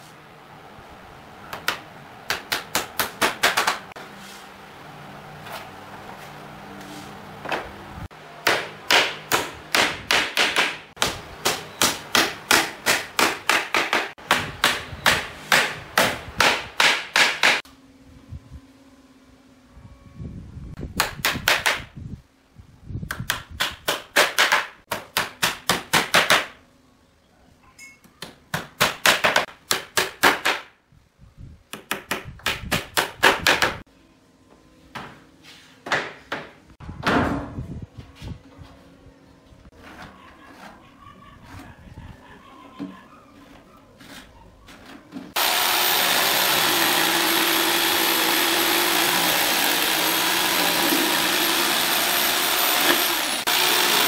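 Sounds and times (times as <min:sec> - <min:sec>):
hammer striking wooden boards: 0:01.6 - 0:03.9, 0:08.4 - 0:17.6, 0:21.0 - 0:21.9, 0:23.1 - 0:26.6, 0:28.6 - 0:30.7.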